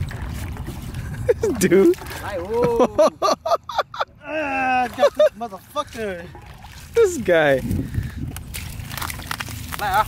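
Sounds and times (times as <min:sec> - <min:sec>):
wind rumble on microphone: 0:00.0 - 0:02.9, 0:06.3 - 0:10.0
water sloshing and splashing: 0:00.0 - 0:10.0.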